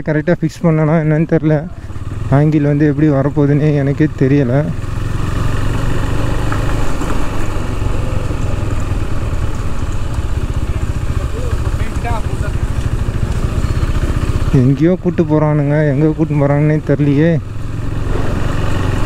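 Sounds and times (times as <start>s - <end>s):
motorcycle engine at low revs: 0.1s - 19.0s.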